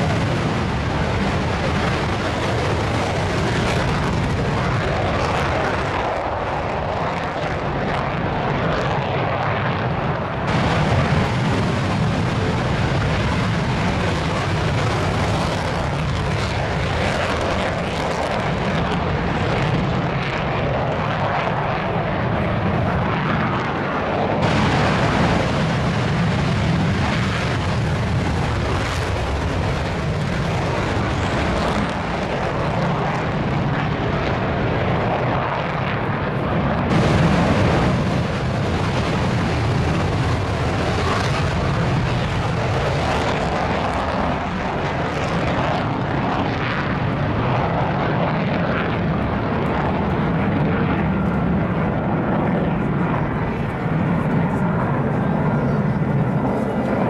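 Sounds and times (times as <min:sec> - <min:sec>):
jet engines roaring in afterburner: 0:00.0 - 0:57.0.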